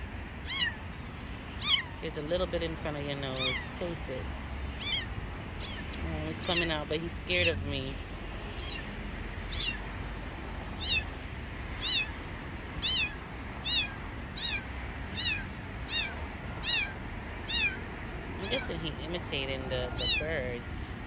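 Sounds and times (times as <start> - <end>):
kitten meowing: 0.4 - 0.8, 1.6 - 2.0, 3.4 - 3.7, 4.8 - 6.6, 8.6 - 9.9, 10.7 - 11.2, 11.8 - 12.2, 12.8 - 17.9, 20.0 - 20.3.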